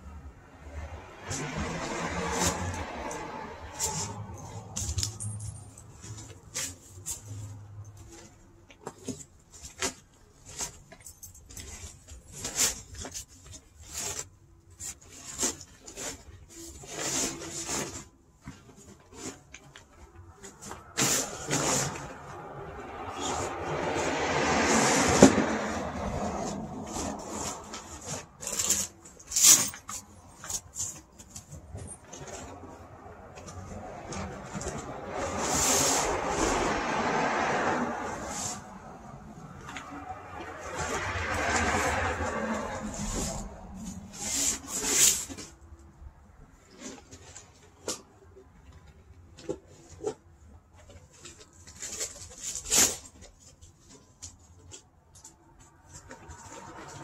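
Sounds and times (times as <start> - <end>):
vinyl rustling and crinkling: 0.0 - 57.0.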